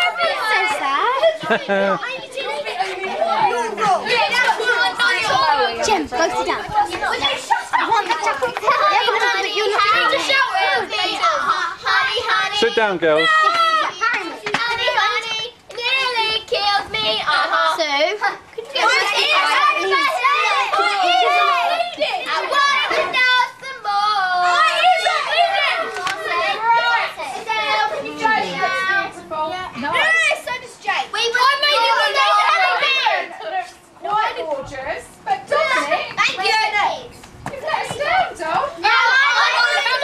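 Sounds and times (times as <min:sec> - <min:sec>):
children's voices overlapping: 0:00.0 - 0:40.0.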